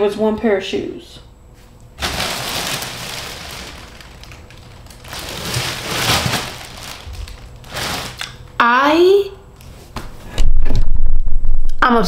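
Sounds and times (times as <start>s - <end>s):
plastic packaging crinkling: 2.0s - 8.4s.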